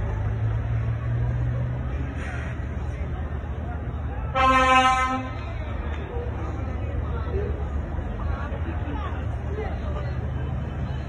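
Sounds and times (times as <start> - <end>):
vehicle horn toot: 4.4 - 5.3.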